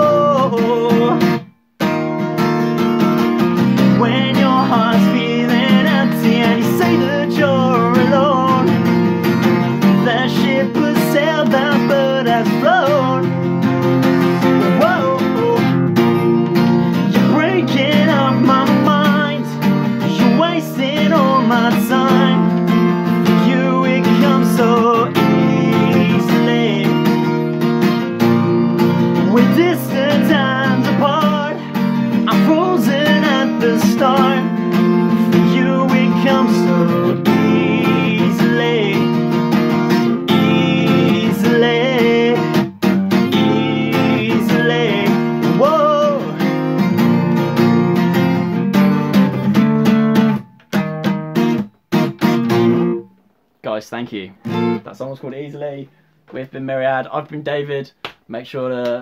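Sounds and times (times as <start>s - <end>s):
man singing: 0.0s - 1.5s, 3.4s - 47.7s
acoustic guitar strumming: 0.0s - 57.0s.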